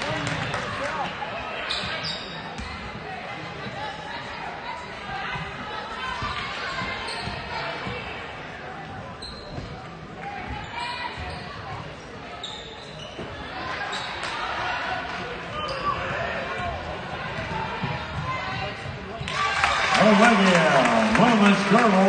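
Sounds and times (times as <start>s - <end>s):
echoing spectator chatter: 0.0s - 22.0s
sneakers squeaking: 1.6s - 3.0s, 6.1s - 8.2s, 8.8s - 14.4s, 15.5s - 19.4s.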